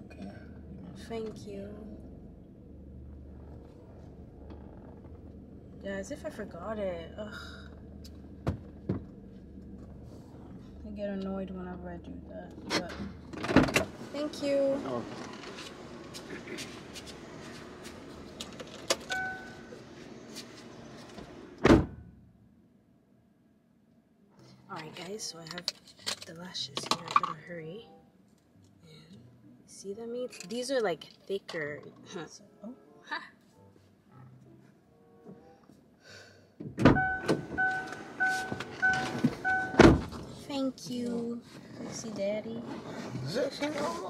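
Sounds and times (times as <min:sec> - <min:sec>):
car engine idling hum: 0:00.0 - 0:23.1, 0:36.6 - 0:42.4
short electronic beep: 0:19.1 - 0:19.6, 0:37.0 - 0:39.8
car door slamming: 0:21.6 - 0:22.1, 0:36.6 - 0:40.3.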